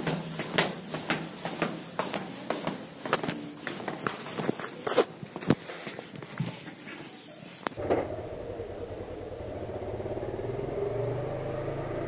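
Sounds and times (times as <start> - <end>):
footsteps walking: 0.0 - 7.8.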